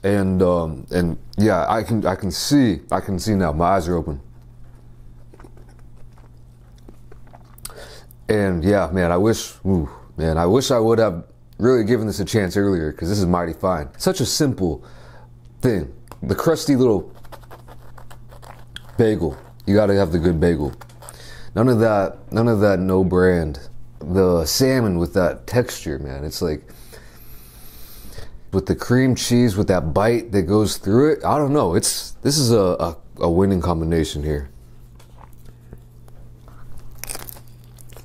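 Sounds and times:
steady low hum: 0.0s - 38.0s
fingertips scratching bagel crust: 3.8s - 7.5s, 16.4s - 21.4s
crunchy bite: 5.1s - 8.2s, 35.0s - 38.0s.

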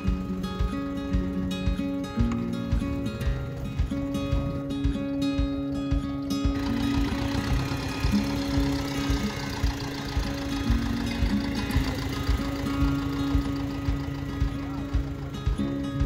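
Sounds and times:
acoustic folk instrumental music: 0.0s - 16.0s
tractor engine running: 0.0s - 16.0s.

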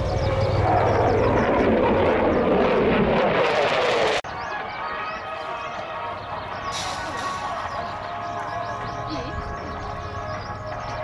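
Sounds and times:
jet engines roaring overhead: 0.0s - 11.0s.

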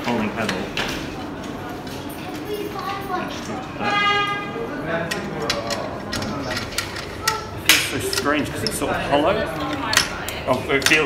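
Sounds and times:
people talking in a hall: 0.0s - 11.0s.

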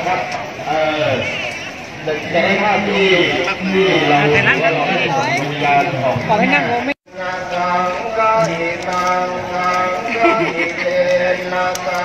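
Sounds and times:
people's voices wavering: 0.0s - 12.0s.

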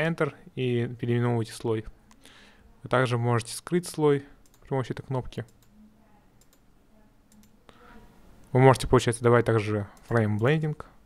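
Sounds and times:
computer mouse clicking: 4.4s - 4.7s, 5.3s - 5.8s, 6.4s - 6.7s, 7.3s - 7.6s, 9.9s - 10.6s.

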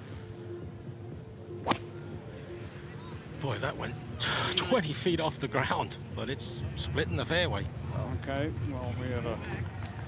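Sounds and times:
golf club striking ball: 1.6s - 2.0s.

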